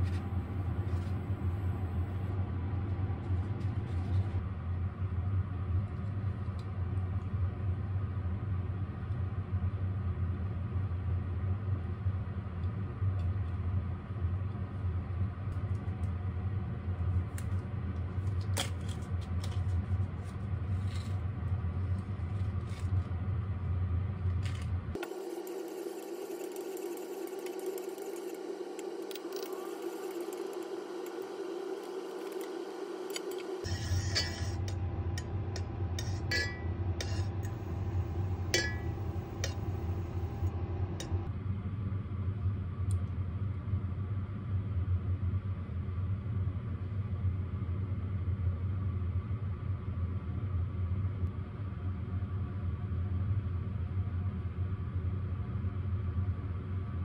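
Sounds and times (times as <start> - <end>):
low mechanical hum: 0.0 - 57.0
higher steady drone: 25.0 - 41.3.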